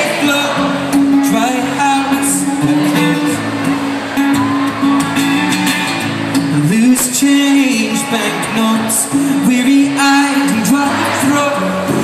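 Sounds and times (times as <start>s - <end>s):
acoustic guitar through sound system: 0.0s - 12.0s.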